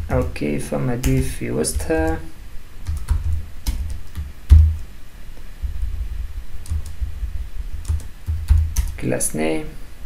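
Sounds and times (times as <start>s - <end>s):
computer keyboard keystrokes: 1.0s - 2.2s, 2.8s - 4.8s, 6.6s - 7.0s, 7.8s - 9.0s.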